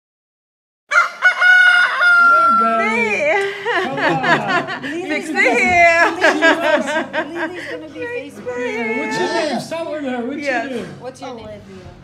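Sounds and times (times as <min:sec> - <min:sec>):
rooster crowing: 0:00.9 - 0:03.2.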